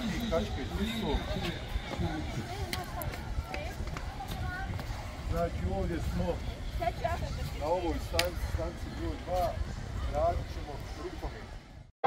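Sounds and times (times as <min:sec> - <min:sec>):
children's voices talking: 0:00.0 - 0:10.2.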